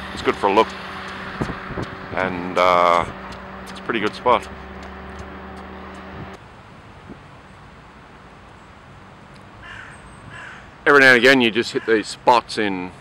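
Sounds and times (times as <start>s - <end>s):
steady low hum: 0.0s - 6.4s
outdoor background: 0.0s - 13.0s.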